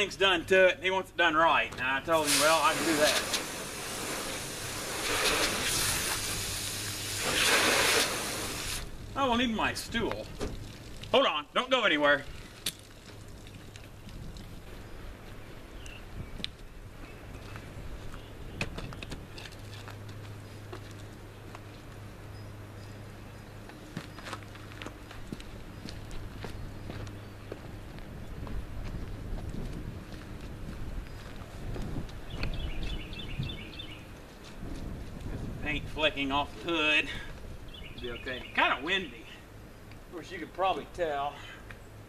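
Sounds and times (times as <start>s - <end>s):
footsteps on gravel: 16.4s - 22.1s, 23.6s - 33.0s
wind on microphone: 27.7s - 34.0s, 34.6s - 36.3s.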